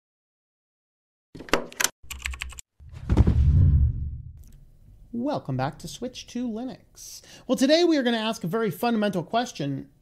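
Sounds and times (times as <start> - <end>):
deep rumbling hit: 2.9 - 4.4.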